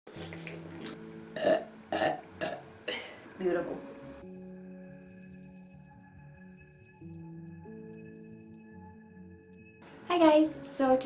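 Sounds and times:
person burping: 1.4 - 3.2.

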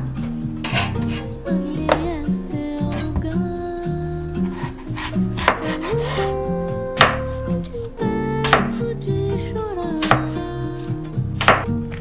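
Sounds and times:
guitar background music: 0.0 - 12.0
knife cutting apple on board: 4.5 - 6.2, 10.0 - 10.4, 11.4 - 12.0.

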